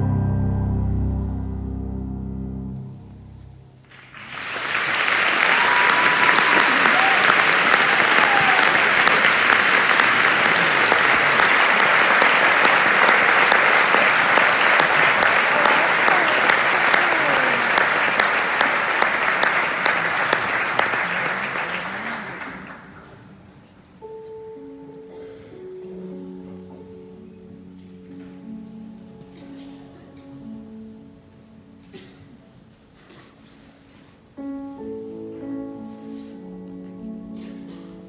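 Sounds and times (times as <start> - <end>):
audience applauding: 3.8 - 23.3.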